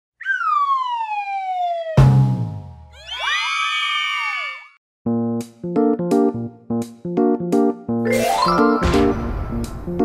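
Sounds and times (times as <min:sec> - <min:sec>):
cartoon falling whistle: 0:00.2 - 0:02.0.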